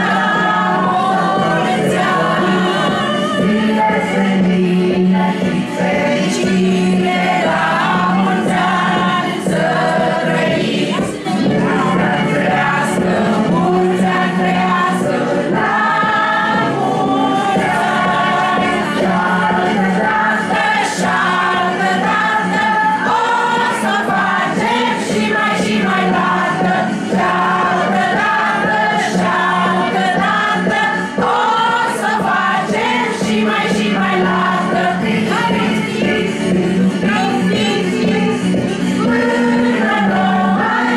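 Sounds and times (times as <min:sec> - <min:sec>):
group singing unaccompanied: 0:00.0 - 0:40.9.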